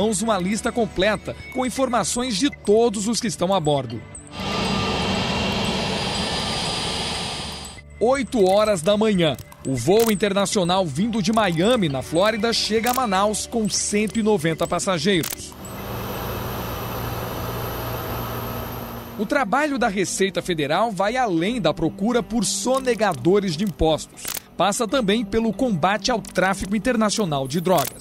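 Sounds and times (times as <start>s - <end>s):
jet engines running: 4.3s - 7.8s, 15.6s - 19.4s.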